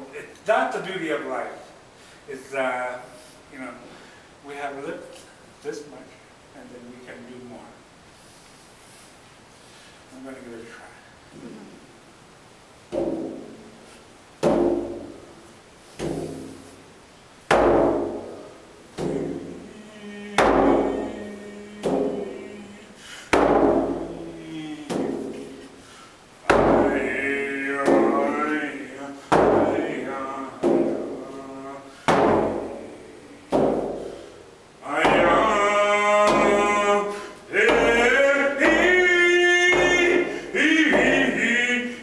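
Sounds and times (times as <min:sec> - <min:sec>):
frame drum booming strokes: 0:14.4 - 0:16.9, 0:17.5 - 0:41.5
person chanting: 0:19.0 - 0:23.0, 0:23.8 - 0:25.7, 0:26.5 - 0:33.8, 0:34.8 - 0:42.0.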